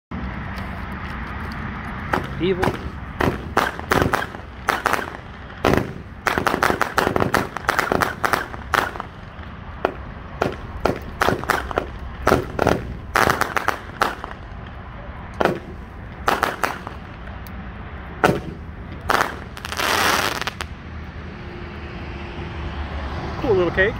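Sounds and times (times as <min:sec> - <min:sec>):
firework bursts with crackle: 0:02.1 - 0:14.7, 0:15.4 - 0:17.2, 0:18.2 - 0:20.7
firework launch thumps: 0:15.4 - 0:17.0, 0:18.2 - 0:19.6.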